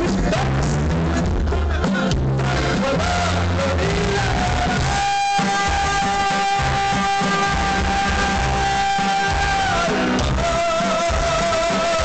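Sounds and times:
live band music: 0.0s - 12.0s
person singing: 0.0s - 12.0s.

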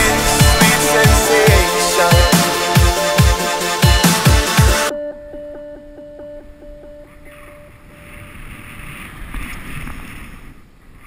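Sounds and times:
pulsing electronic music: 0.0s - 6.2s.

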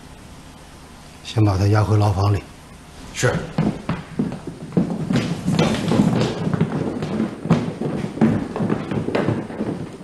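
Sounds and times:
footsteps and shuffling thuds: 2.8s - 10.0s.

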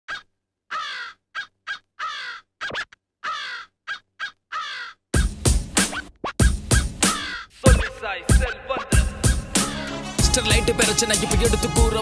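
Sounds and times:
crow cawing: 0.1s - 2.5s, 3.2s - 5.1s, 7.1s - 7.6s
hip-hop beat with heavy drums: 5.2s - 12.0s.

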